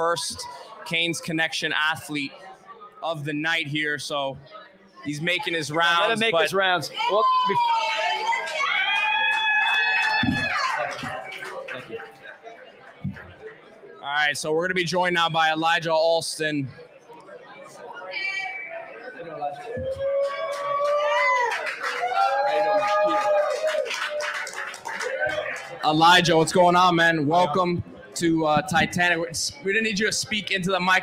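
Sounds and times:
people calling and whooping: 0:05.1 - 0:12.0, 0:18.0 - 0:25.9.

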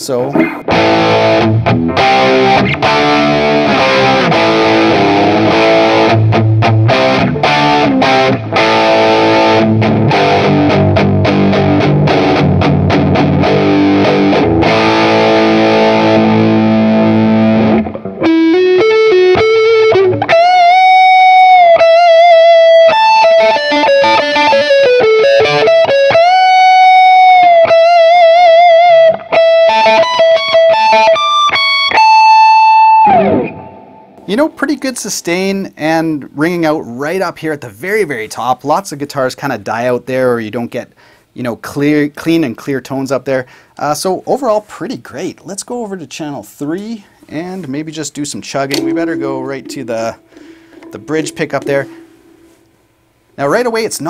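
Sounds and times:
overdriven electric guitar: 0:00.3 - 0:34.3, 0:48.7 - 0:53.0.

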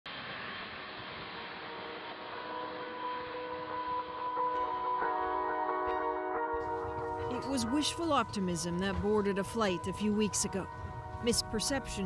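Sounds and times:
jet engines running: 0:00.1 - 0:05.8.

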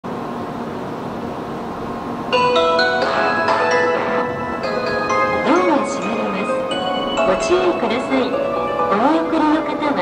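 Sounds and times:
train hum and whir: 0:00.0 - 0:10.0
faint steady tones: 0:01.4 - 0:10.0.

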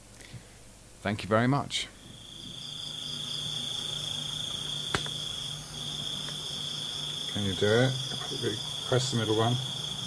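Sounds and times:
crickets trilling: 0:01.4 - 0:10.0.

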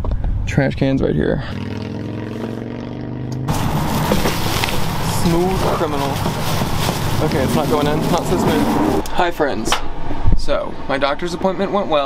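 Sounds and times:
hissy outdoor noise: 0:03.5 - 0:12.0.

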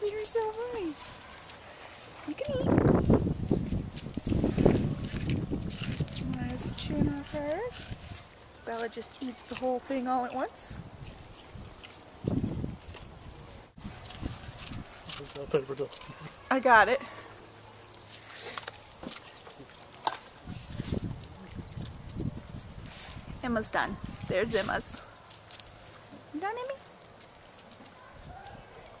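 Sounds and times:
dog chewing watermelon rind: 0:03.5 - 0:10.4, 0:11.0 - 0:16.9, 0:17.5 - 0:23.4, 0:24.0 - 0:29.0.

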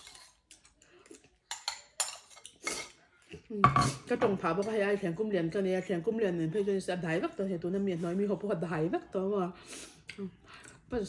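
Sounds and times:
spoon scraping a ceramic bowl: 0:00.0 - 0:00.7.

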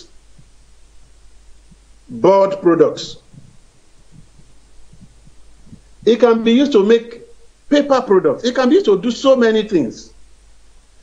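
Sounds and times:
low steady hum: 0:00.0 - 0:11.0
soft low thumps: 0:00.1 - 0:02.1, 0:03.1 - 0:06.2.

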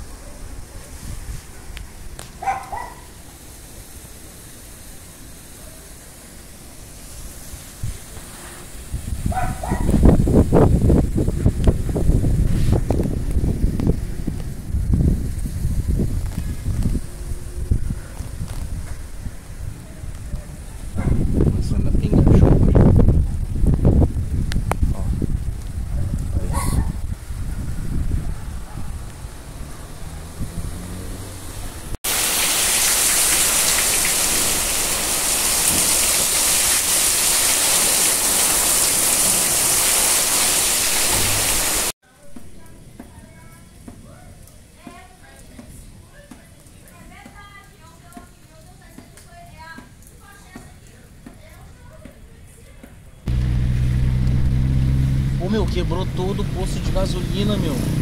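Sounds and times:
heavy rain downpour hiss: 0:00.0 - 0:26.4, 0:29.0 - 0:42.0, 0:53.3 - 0:58.0
wind buffeting microphone: 0:08.8 - 0:32.0
car engine running: 0:53.3 - 0:58.0.

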